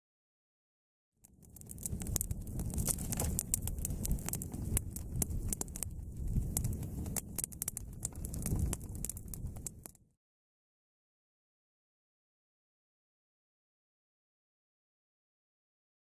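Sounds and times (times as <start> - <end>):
campfire crackling and popping: 1.2 - 10.0
low fire rumble: 1.2 - 10.0.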